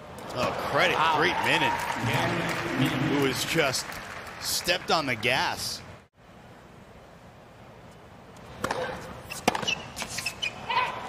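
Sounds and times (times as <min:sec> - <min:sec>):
quiet stadium crowd: 0:00.0 - 0:09.2
tennis ball struck and bouncing: 0:08.6 - 0:10.2.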